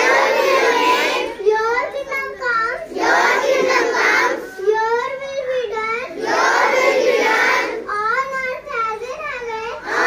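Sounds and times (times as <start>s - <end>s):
children singing a prayer: 0.0s - 7.9s, 9.8s - 10.0s.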